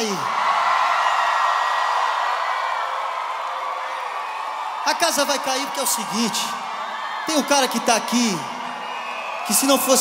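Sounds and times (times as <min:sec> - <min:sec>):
crowd cheering and screaming: 0:00.0 - 0:10.0.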